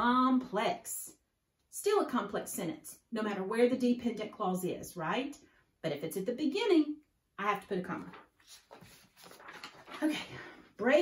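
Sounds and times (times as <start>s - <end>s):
paper sheets rustling: 7.8s - 10.5s.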